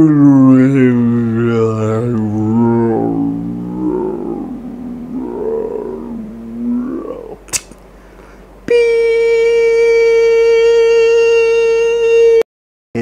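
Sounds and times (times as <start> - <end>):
slowed-down man's voice drone: 0.0 - 7.6, 8.6 - 12.4.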